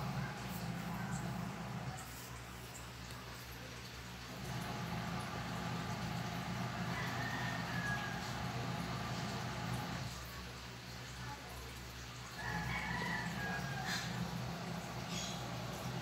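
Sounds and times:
distant rooster crowing: 0:00.0 - 0:02.0, 0:04.5 - 0:10.1, 0:12.4 - 0:16.0
low steady hum: 0:00.0 - 0:10.4.

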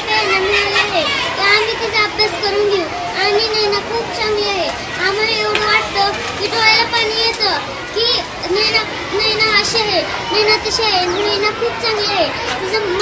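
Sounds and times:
girl speaking: 0:00.0 - 0:13.0.

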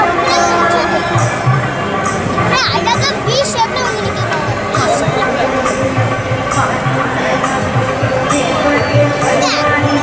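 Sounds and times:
children shouting: 0:00.0 - 0:01.5, 0:02.4 - 0:06.0
crowd chatter: 0:00.0 - 0:10.0
music: 0:00.0 - 0:10.0.

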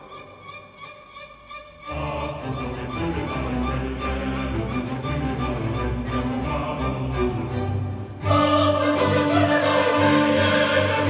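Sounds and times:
string orchestra playing: 0:00.0 - 0:11.0
choir singing a carol: 0:01.9 - 0:11.0.

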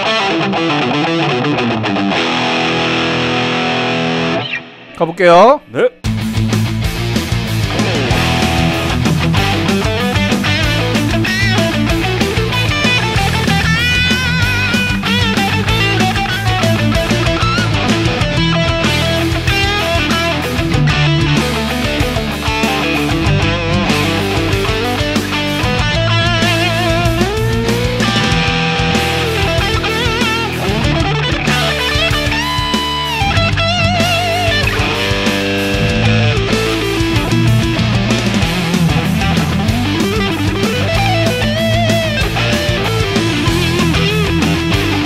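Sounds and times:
overdriven electric guitar lead: 0:00.0 - 0:45.0
low sustained guitar chords: 0:07.6 - 0:45.0.

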